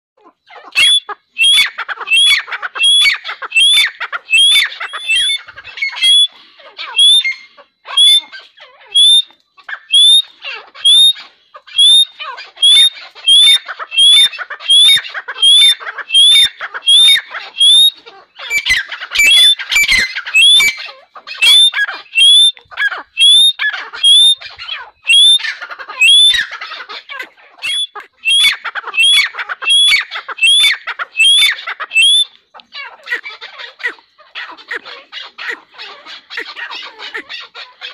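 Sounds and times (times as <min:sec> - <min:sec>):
francolin calling: 0:00.2 - 0:37.9.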